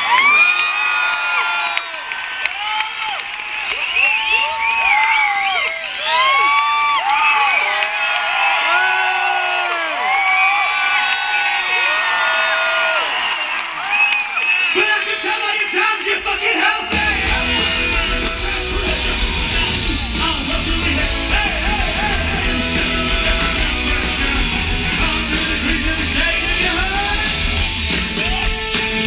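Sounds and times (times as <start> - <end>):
crowd screaming and whooping: 0.0 - 29.0
scattered clapping: 0.1 - 29.0.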